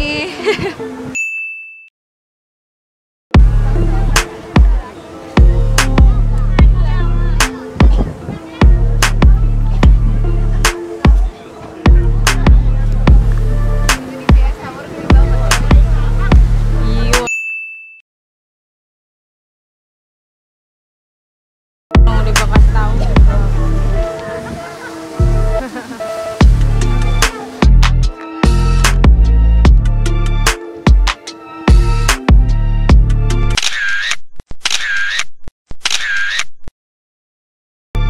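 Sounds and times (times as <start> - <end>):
high ding: 1.2 - 1.9, 17.3 - 18.0
background music: 3.4 - 17.3, 21.9 - 33.6.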